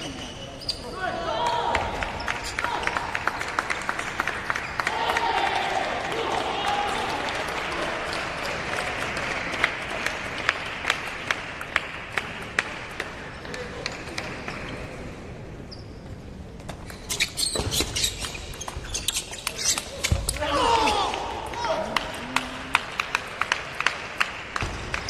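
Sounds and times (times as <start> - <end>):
applause: 2.0 - 12.8, 21.8 - 25.0.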